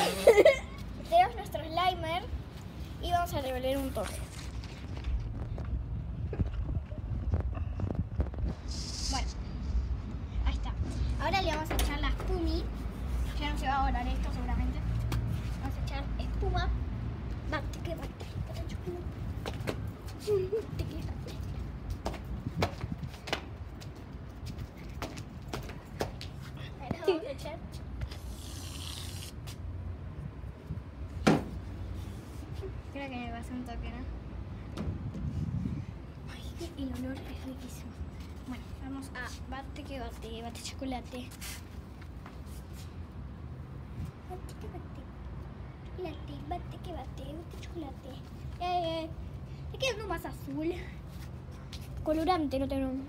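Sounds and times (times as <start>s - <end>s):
short hiss: 8.4s - 10.1s.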